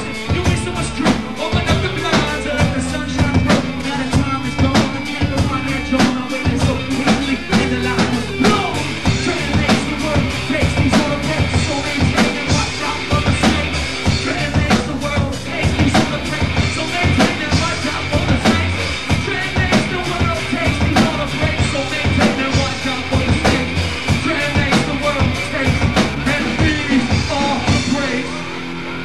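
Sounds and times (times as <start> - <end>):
drum kit beat: 0.0 - 29.0
live band playing loud music: 0.0 - 29.0.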